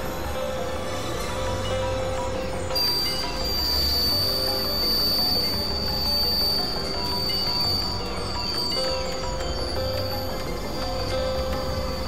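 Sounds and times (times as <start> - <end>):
high steady whine: 0.0 - 12.0.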